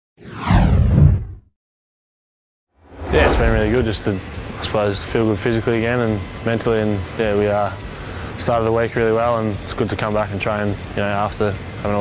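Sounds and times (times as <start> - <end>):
downward whoosh with deep rumble: 2.8 - 5.3.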